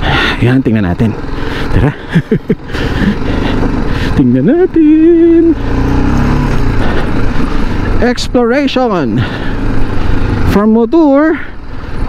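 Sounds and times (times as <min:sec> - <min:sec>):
motorcycle engine running: 0:00.0 - 0:12.0
road noise rushing: 0:00.0 - 0:12.0.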